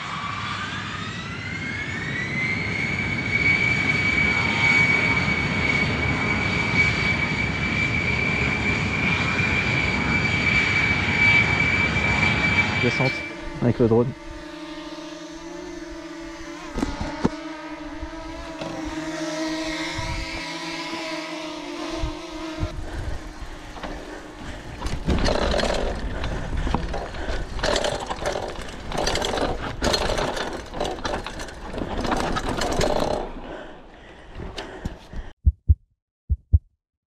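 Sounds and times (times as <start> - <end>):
drone propellers whining: 0.0 - 35.3
loud irregular noise: 22.0 - 33.4.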